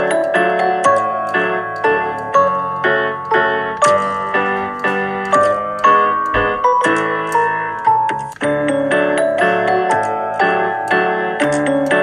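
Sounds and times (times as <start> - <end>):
piano music: 0.0 - 12.0.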